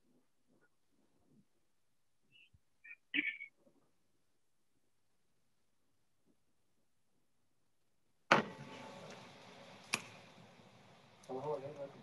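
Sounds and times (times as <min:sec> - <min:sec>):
background room noise: 0:00.0 - 0:12.0.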